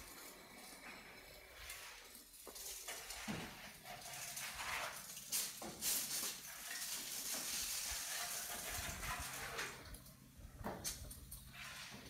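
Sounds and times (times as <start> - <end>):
hoe scraping wet gravel: 0.0 - 10.0, 11.5 - 12.0.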